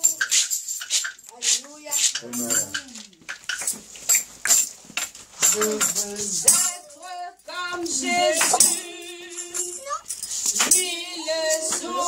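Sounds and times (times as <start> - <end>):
tambourine jingles: 0.0 - 12.0
person calling out: 2.2 - 3.2.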